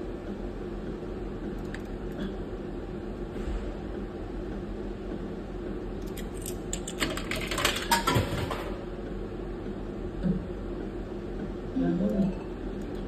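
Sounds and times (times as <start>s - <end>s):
coin clicking and clattering: 6.3s - 8.4s.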